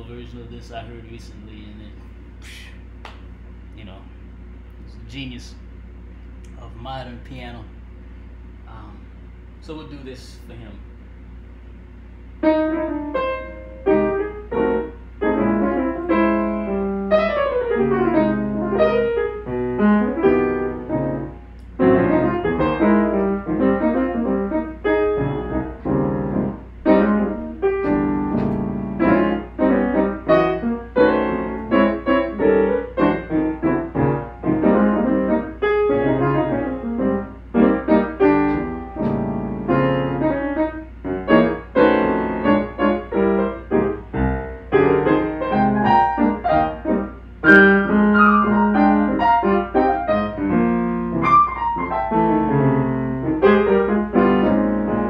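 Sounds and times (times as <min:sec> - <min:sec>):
solo jazz piano: 0:12.2 - 0:55.0.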